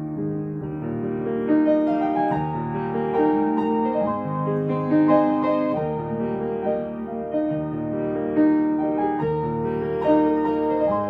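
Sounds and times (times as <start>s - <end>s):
grand piano melody: 0.0s - 11.0s.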